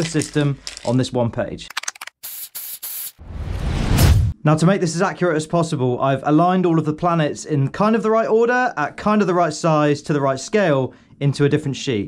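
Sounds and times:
aerosol spray can hissing: 2.2 - 3.2.

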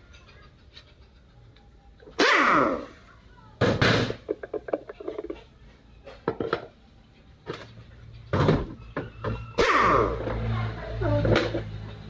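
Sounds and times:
metal parts knocking: 3.9 - 5.5.

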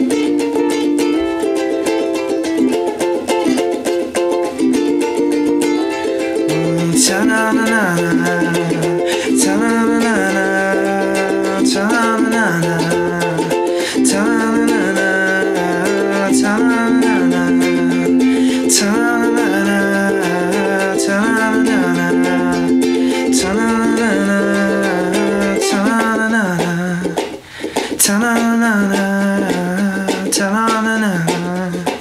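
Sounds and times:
ukulele strumming: 0.0 - 32.0
man singing wordless melody: 4.6 - 32.0.

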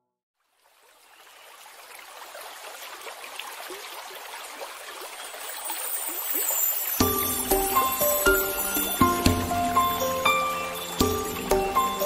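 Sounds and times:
babbling stream water: 0.4 - 12.0.

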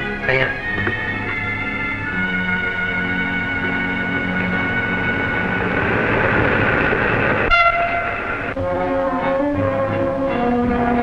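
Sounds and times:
train rushing rumble: 0.0 - 11.0
train whistle: 7.5 - 11.0.

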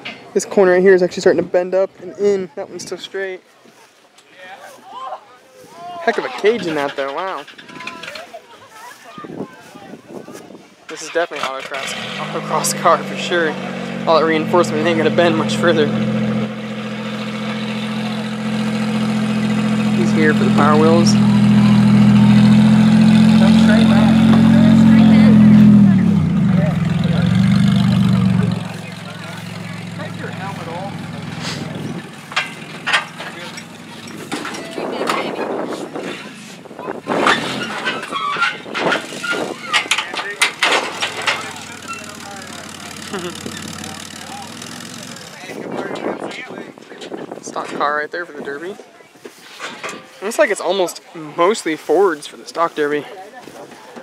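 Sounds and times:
vehicle engine idling: 11.6 - 47.4
sharp knocks and clanks: 32.2 - 35.3, 37.2 - 45.3.

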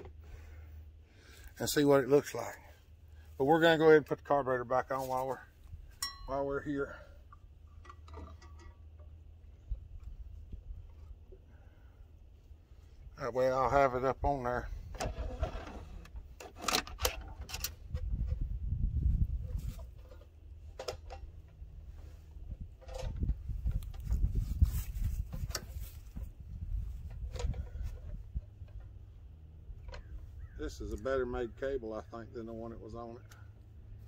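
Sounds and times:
steady low rumble: 17.4 - 32.9.

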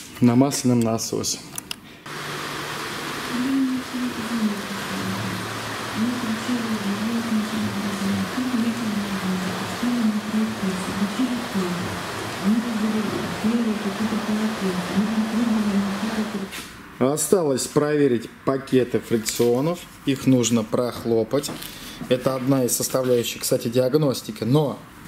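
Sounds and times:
steady hiss: 2.1 - 16.7.

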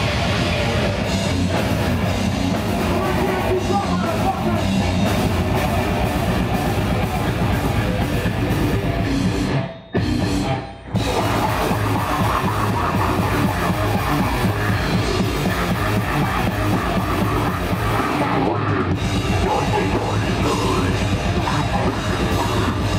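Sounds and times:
heavy metal band playing live: 0.0 - 22.9.

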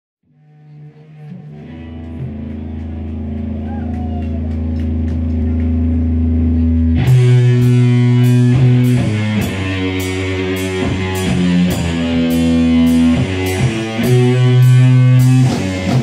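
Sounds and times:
droning electric guitar chord: 0.2 - 16.0
punk rock band playing: 0.9 - 16.0.

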